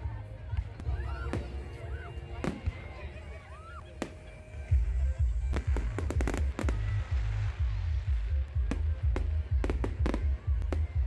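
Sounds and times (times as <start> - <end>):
low rumble: 4.7 - 11.0.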